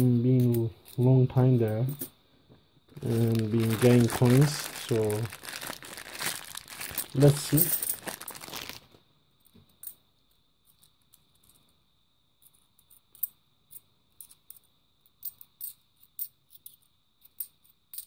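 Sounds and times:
plastic bag crinkling: 0:02.9 - 0:09.0
coins clicking together: 0:06.9 - 0:08.0, 0:12.4 - 0:18.0.

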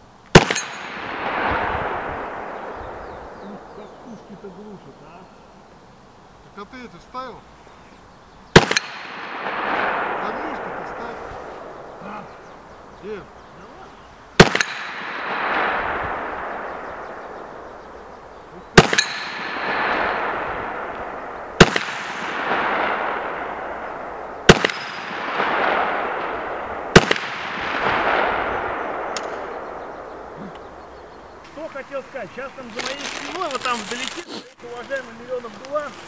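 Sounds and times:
rolling gunshot echo: 0:00.3 - 0:04.2, 0:08.5 - 0:12.2, 0:14.4 - 0:30.4
gunshots: 0:00.3 - 0:04.5, 0:08.5 - 0:12.4, 0:14.4 - 0:30.4.

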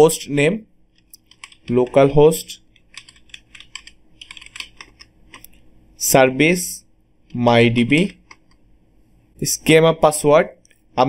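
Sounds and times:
keyboard key clicks: 0:01.0 - 0:01.8, 0:02.8 - 0:05.5.

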